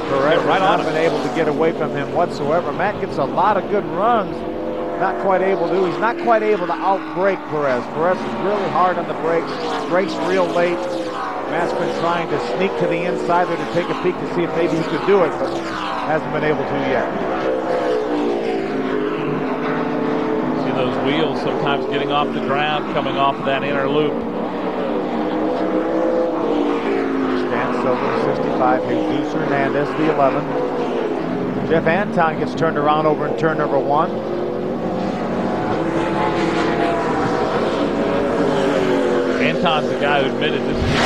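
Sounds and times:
race car engines: 0:00.0 - 0:41.0.

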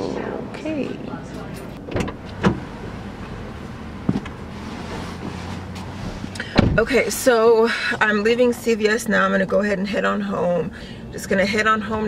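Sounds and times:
knocks and rustles from car door: 0:01.8 - 0:02.7, 0:04.0 - 0:07.0.

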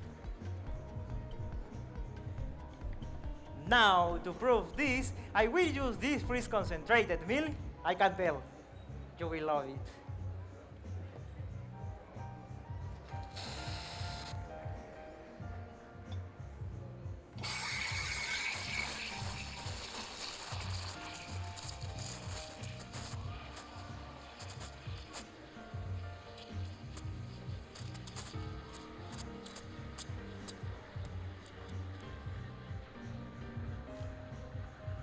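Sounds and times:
background music with steady beat: 0:00.0 - 0:35.0
steam wand hissing in milk: 0:13.2 - 0:14.4, 0:17.4 - 0:32.0.

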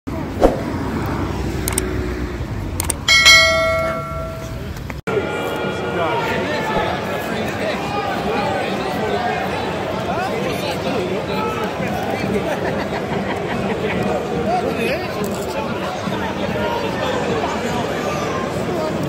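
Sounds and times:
street noise: 0:00.1 - 0:19.0
bell struck ringing: 0:03.1 - 0:04.7
stadium crowd chatter: 0:04.2 - 0:19.0.

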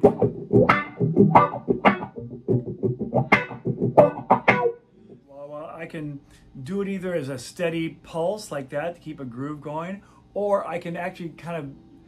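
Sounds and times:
wah-wah electric guitar strumming: 0:00.0 - 0:05.2.

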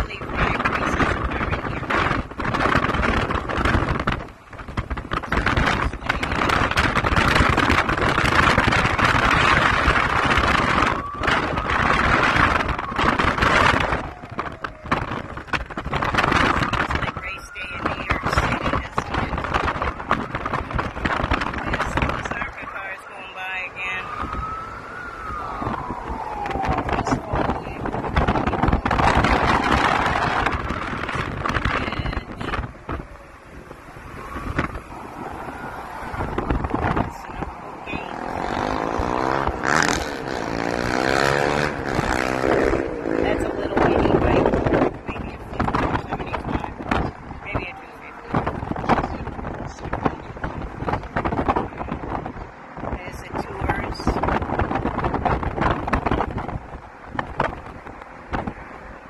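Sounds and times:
wind and road noise: 0:00.0 - 0:59.0
distant race cars passing: 0:32.7 - 0:45.9.

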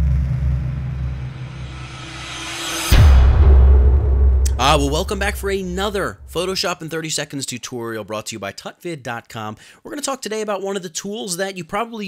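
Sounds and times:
cinematic hit: 0:00.0 - 0:06.6
deep sustained rumble: 0:00.0 - 0:06.6
hissing swell: 0:01.1 - 0:06.6.

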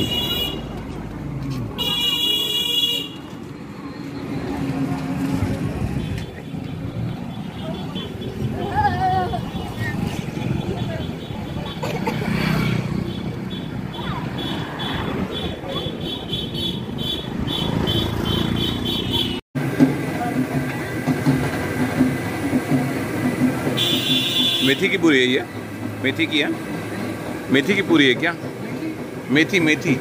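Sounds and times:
traffic: 0:00.0 - 0:30.0
voices: 0:03.8 - 0:18.5.

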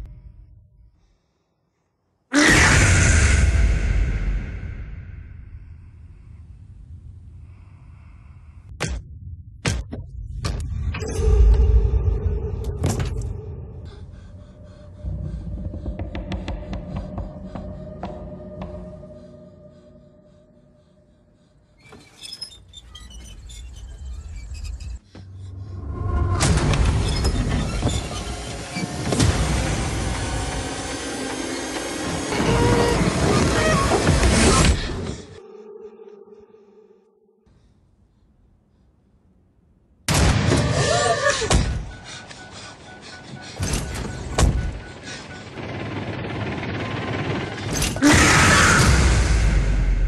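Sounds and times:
horror trailer sound design: 0:02.4 - 0:21.5, 0:23.5 - 0:37.3, 0:40.1 - 0:50.0.

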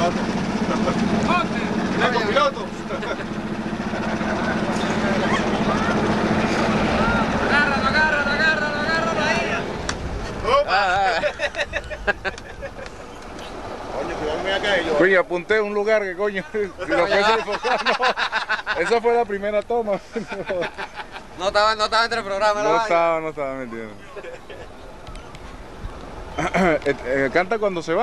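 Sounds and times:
people talking: 0:00.0 - 0:03.2, 0:04.0 - 0:09.8, 0:13.9 - 0:18.1
outboard motor droning: 0:00.0 - 0:28.0.

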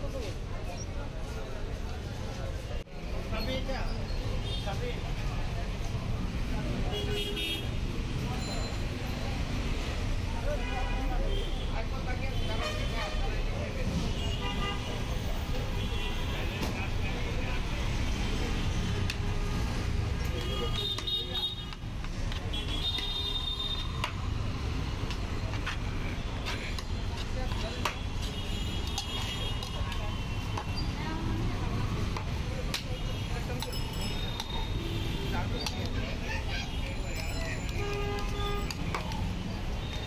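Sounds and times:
road traffic rumble: 0:00.0 - 0:40.0
voices: 0:08.2 - 0:40.0.

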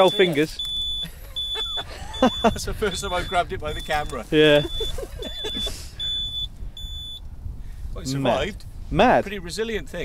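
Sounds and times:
high electronic beeps: 0:00.0 - 0:07.2.

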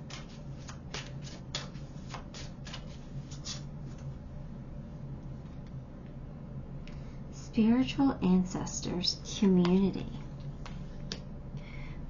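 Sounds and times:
cards being shuffled: 0:00.0 - 0:04.0
steady low hum: 0:00.0 - 0:12.0.

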